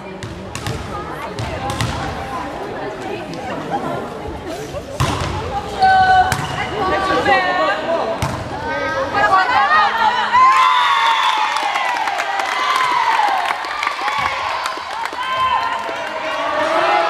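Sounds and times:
people talking and calling out: 0.0 - 10.8
volleyball bouncing on floor: 0.2 - 2.0.

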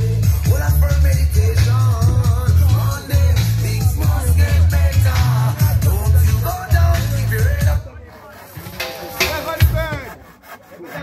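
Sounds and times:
hand saw cutting wood: 6.4 - 11.0.

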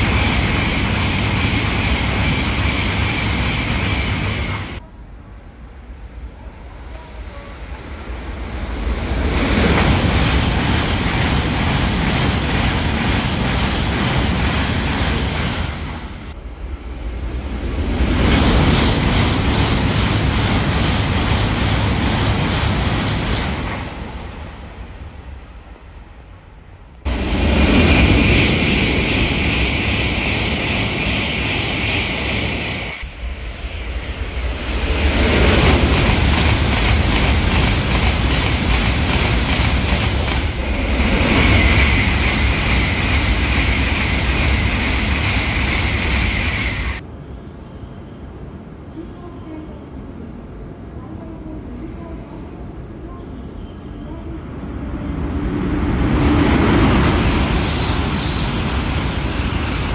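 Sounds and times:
high-speed trains passing: 0.0 - 59.9.

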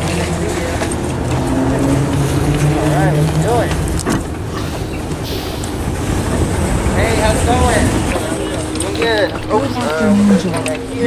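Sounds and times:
bus engine humming: 0.0 - 11.0
wind noise on microphone: 0.8 - 10.0.

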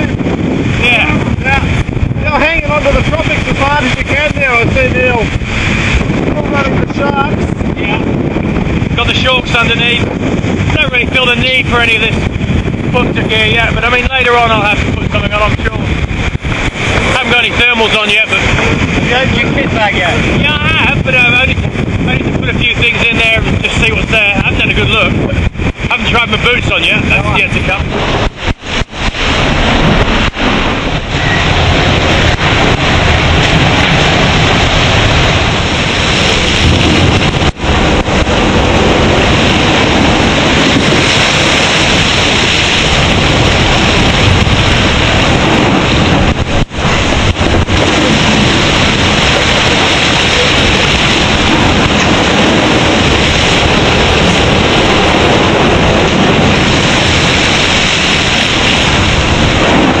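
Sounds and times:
rushing sea water: 0.0 - 60.0
wind buffeting microphone: 0.0 - 60.0.

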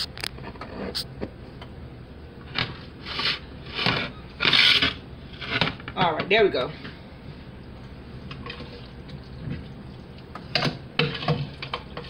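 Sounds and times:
rubbing and scraping: 3.0 - 5.8.

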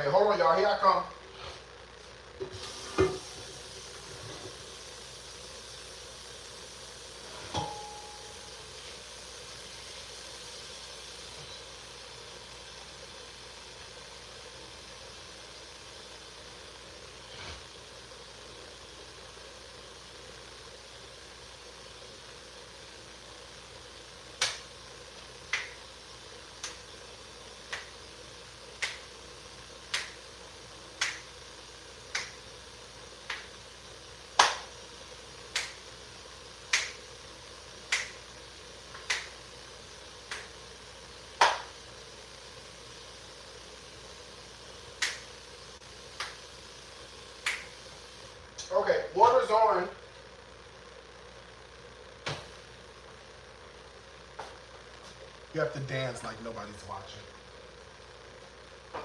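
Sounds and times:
faint steady hiss: 0.0 - 59.0
finger snaps: 24.4 - 24.6, 25.5 - 25.8, 26.6 - 26.8, 27.7 - 27.9, 28.8 - 29.0, 29.9 - 30.2, 31.0 - 31.3, 32.1 - 32.4, 33.2 - 33.5, 34.4 - 34.6, 35.5 - 35.8, 36.7 - 37.0, 37.9 - 38.2, 38.9 - 39.3, 40.3 - 40.5, 45.0 - 45.3, 46.2 - 46.4, 47.4 - 47.8.

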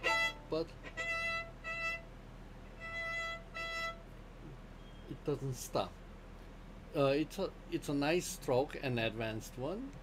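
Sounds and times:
solo violin short bowed notes: 0.0 - 2.0.

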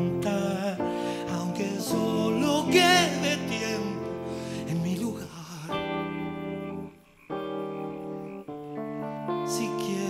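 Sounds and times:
guitar sustained chords: 0.0 - 10.0.

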